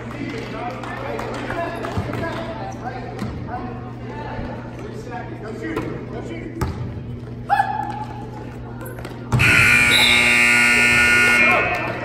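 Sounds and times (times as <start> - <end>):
crowd chatter: 0.0 - 12.0
scoreboard buzzer blast: 9.4 - 11.8.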